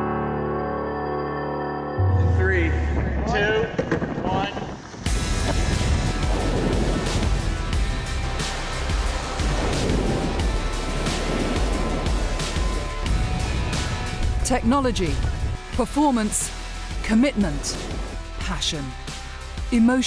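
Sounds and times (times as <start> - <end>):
film score music: 0.0 - 20.0
rushing water: 5.2 - 14.4.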